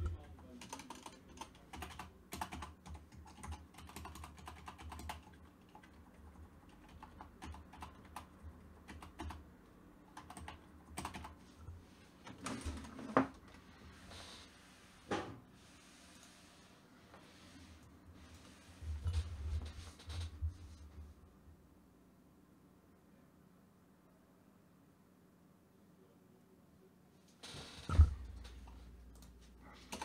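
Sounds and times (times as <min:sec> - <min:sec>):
keyboard typing clicks: 0:00.0 - 0:06.0, 0:06.7 - 0:09.4, 0:10.1 - 0:11.4.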